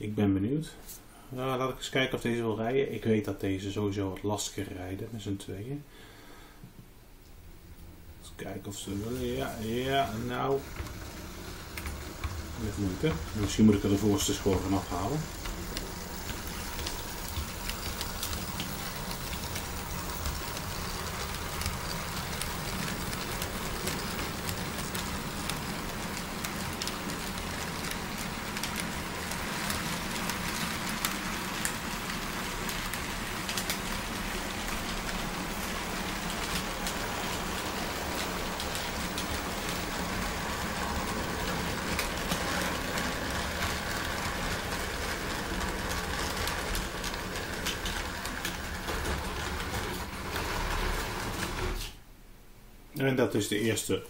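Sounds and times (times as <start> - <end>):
wheels clicking on track: 8.8 - 51.9
model train motors whirring: 8.8 - 52.0.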